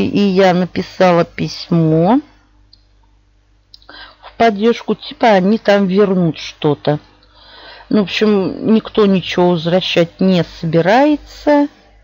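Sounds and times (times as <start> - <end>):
woman speaking: 0.0 - 2.4, 3.8 - 11.9
low steady hum: 0.0 - 12.0.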